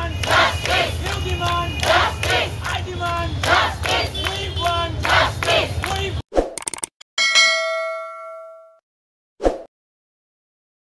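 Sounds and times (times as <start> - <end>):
crowd chanting: 0.0 - 6.2
quick clicks: 6.5 - 7.0
bright bell-like ding: 7.2 - 8.8.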